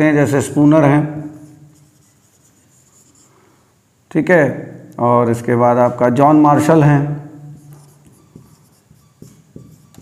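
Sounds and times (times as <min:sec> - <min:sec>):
marker pen on whiteboard: 0:01.2 - 0:03.3, 0:07.4 - 0:10.0.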